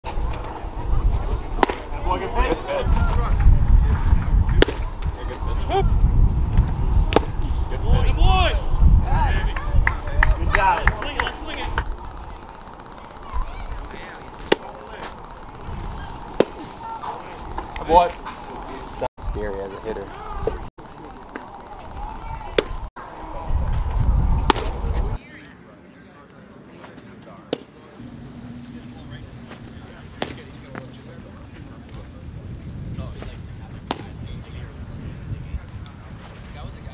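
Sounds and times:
distant voices: 0.0 - 36.9
wind rumble on microphone: 0.1 - 10.6, 22.7 - 25.2, 31.4 - 36.9
baseball popping into mitt: 1.6 - 1.9, 4.6 - 4.9, 7.1 - 7.4, 24.5 - 24.8.

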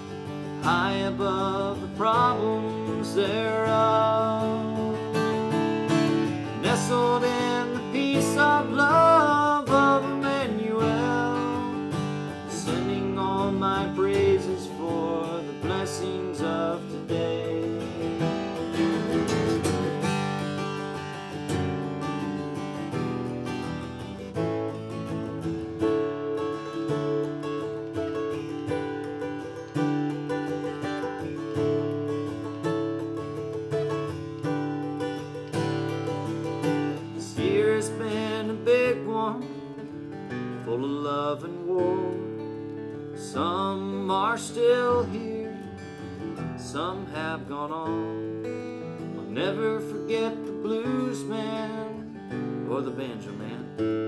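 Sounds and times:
acoustic guitar picking and strumming: 0.0 - 54.0.

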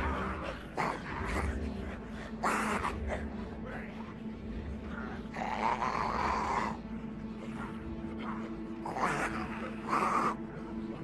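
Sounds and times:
zombie rasping snarls: 0.0 - 10.7.

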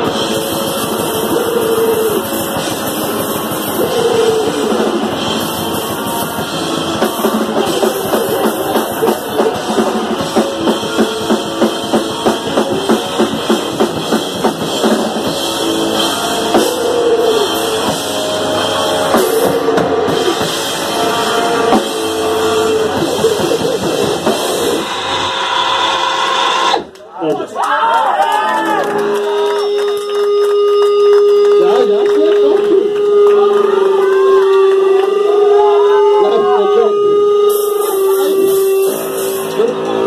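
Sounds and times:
grindcore band playing live: 0.0 - 26.8, 28.4 - 40.0.

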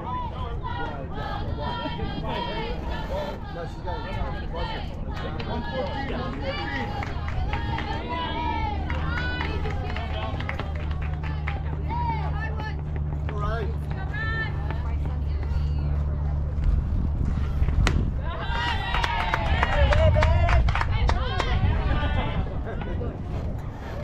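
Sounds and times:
steady low hum: 0.0 - 24.0
voices calling out and chattering: 0.0 - 24.0
people shouting and cheering: 4.0 - 12.8, 18.2 - 23.5
softball bat hitting ball: 17.6 - 18.7.

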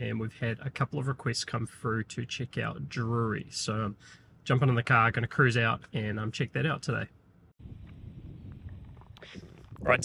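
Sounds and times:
wind noise on microphone: 7.6 - 10.0.

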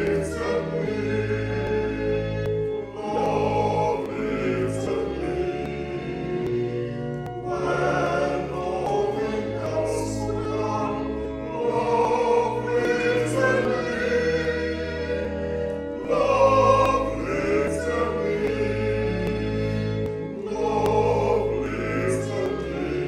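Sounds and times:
man singing a hymn: 7.5 - 14.3, 20.5 - 23.0.

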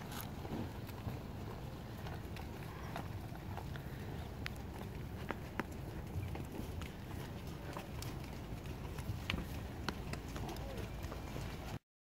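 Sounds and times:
horse hoofbeats on dirt: 0.0 - 11.8
low steady rumble: 0.0 - 11.8.

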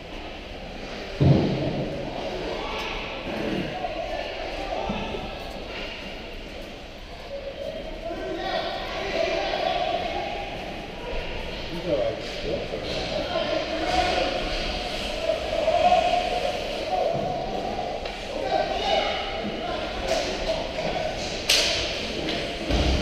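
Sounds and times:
indistinct echoing voices: 0.0 - 23.0
loud thud: 22.7 - 23.0.

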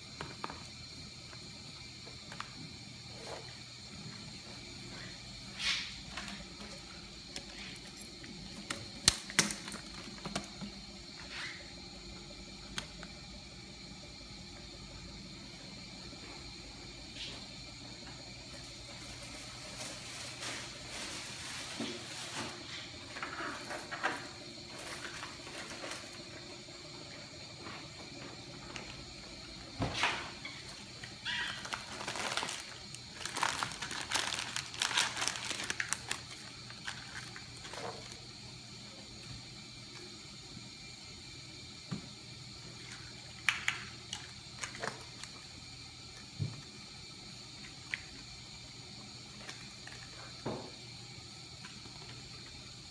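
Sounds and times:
plastic packaging crinkling: 31.2 - 38.2.

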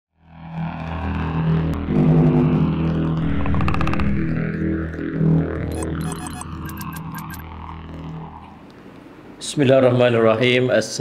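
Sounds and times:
low electronic drone: 0.2 - 9.4
fast fluttering build: 3.0 - 7.8.

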